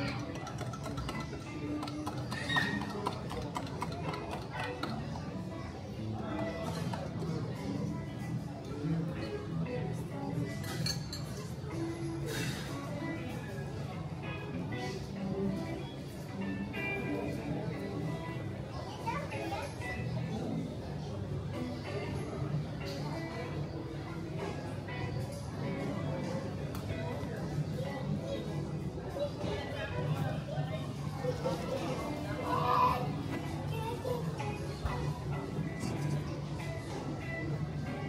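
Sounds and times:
background hubbub: 0:00.0 - 0:38.0
background music: 0:00.0 - 0:38.0
voices in a hall: 0:00.0 - 0:38.0
child's high voice: 0:32.4 - 0:34.5.

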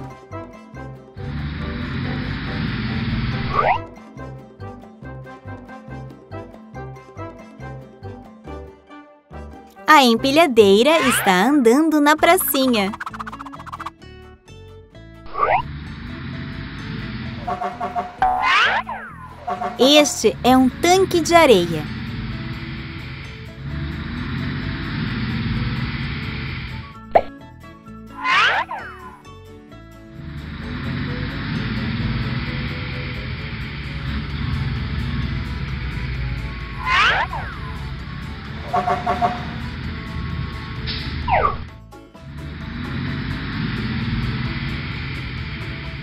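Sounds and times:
background music: 0:00.0 - 0:46.0
sliding-pitch swoops: 0:03.4 - 0:03.8, 0:12.4 - 0:13.9, 0:15.3 - 0:15.7, 0:28.2 - 0:29.2, 0:36.8 - 0:37.7
gliding whistle: 0:28.2 - 0:29.2, 0:36.7 - 0:37.8.

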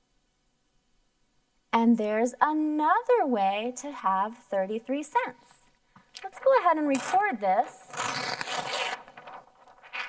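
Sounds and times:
paper sheet flipping rustle: 0:06.2 - 0:10.0.

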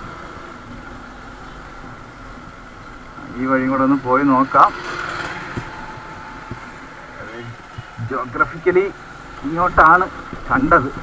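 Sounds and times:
motorcycle engine running: 0:00.0 - 0:11.0
road and wind noise: 0:00.0 - 0:11.0.

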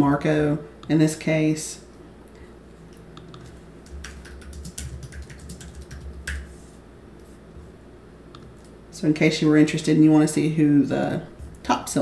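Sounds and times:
typing on computer keyboard: 0:03.2 - 0:06.5.

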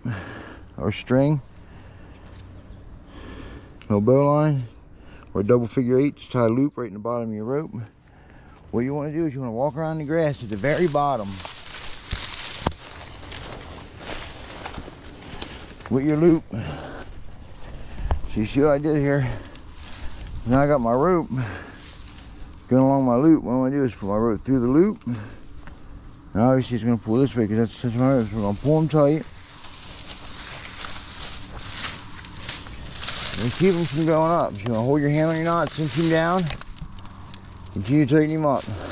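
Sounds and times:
dry grass stalks rustling: 0:01.0 - 0:03.3, 0:07.8 - 0:38.9
footsteps through grass: 0:07.8 - 0:38.9.

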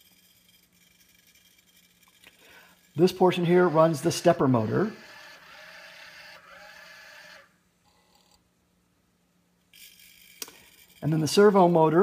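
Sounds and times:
small electric motors running: 0:00.0 - 0:08.3, 0:09.8 - 0:12.0
higher-pitched motor sound: 0:03.0 - 0:07.5.

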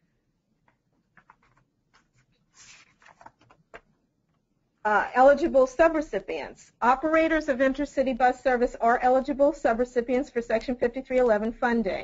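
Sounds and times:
soft rustle: 0:01.2 - 0:03.6.

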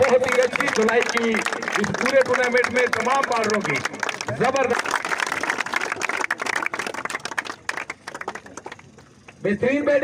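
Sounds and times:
crowd applauding: 0:00.0 - 0:09.4.

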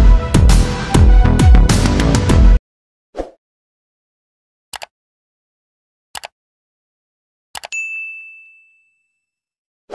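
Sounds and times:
bright bell ding: 0:07.7 - 0:09.5.

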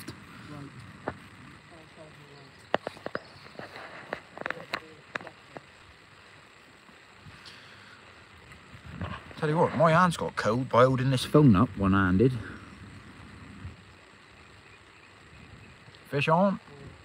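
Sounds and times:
faint distant voices: 0:00.0 - 0:08.4.

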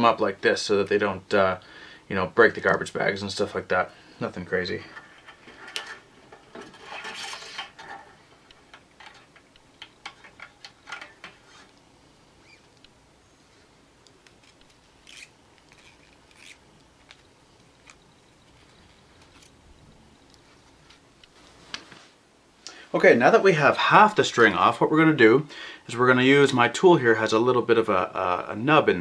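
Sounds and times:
guitar strings being unwound: 0:04.8 - 0:11.8, 0:14.2 - 0:17.2.

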